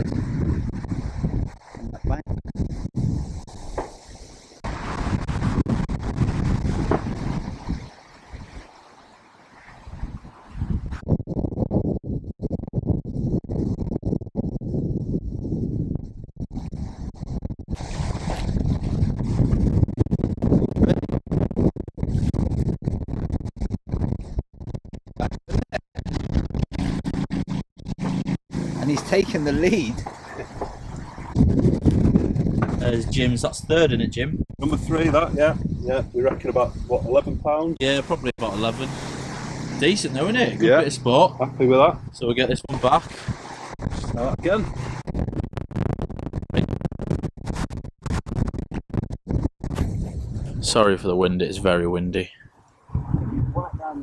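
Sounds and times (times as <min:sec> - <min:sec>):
strong wind buffeting microphone: 0:00.0 - 0:54.0.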